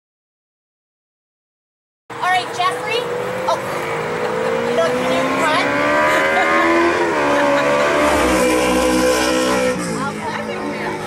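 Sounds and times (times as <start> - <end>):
vehicle engine accelerating: 2.1 - 11.0.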